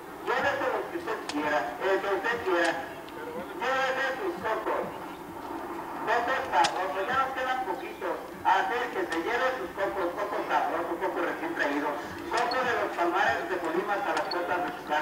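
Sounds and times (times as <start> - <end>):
people talking: 0.3 - 5.2, 6.1 - 15.0.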